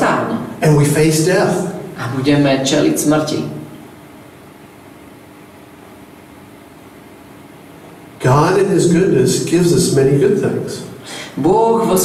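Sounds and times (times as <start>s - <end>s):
background hiss: 0.0s - 12.0s
faint hum: 0.0s - 12.0s.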